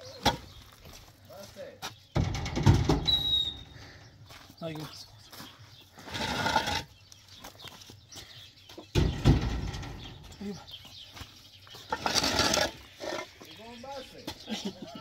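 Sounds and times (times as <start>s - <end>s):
concrete blocks knocking and grating: 6.0s - 6.9s, 11.8s - 13.5s.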